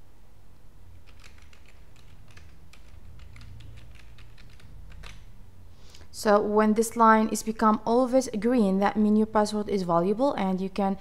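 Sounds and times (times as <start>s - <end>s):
low steady hum: 0.0s - 11.0s
keyboard key clicks: 1.0s - 5.3s.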